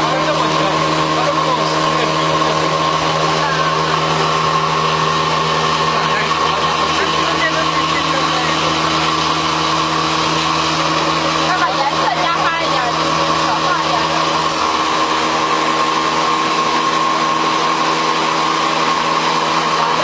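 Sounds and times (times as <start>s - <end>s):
motor humming: 0.0s - 20.0s.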